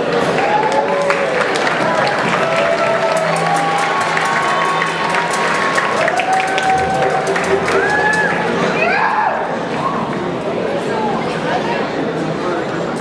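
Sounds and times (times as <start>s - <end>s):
audience applause: 0.0s - 10.5s
crowd voices and calls: 0.0s - 13.0s.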